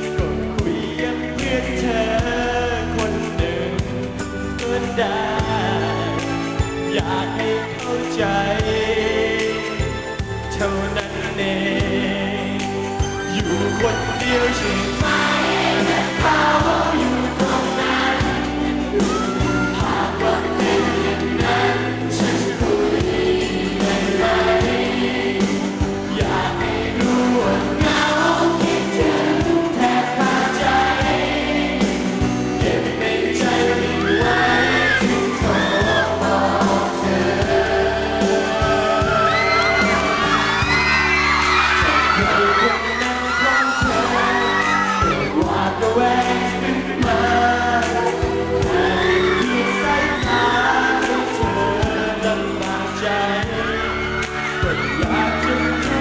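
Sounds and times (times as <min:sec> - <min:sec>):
live pop band playing chords: 0:00.0 - 0:56.0
voices singing: 0:00.0 - 0:56.0
crowd whooping and cheering: 0:14.0 - 0:24.6, 0:33.2 - 0:56.0
drum beat: 0:15.0 - 0:52.4.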